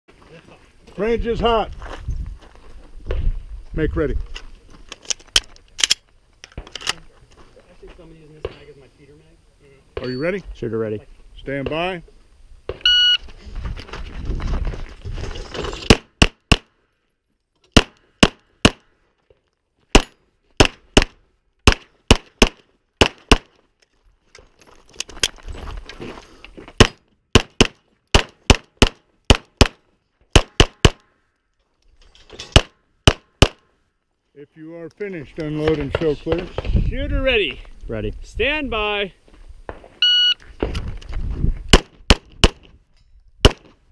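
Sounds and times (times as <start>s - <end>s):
shot timer beep: 12.8s - 13.2s, 40.0s - 40.4s
pistol shots: 19.9s - 23.5s, 26.8s - 31.0s, 32.6s - 33.6s, 41.7s - 42.7s, 43.4s - 43.8s.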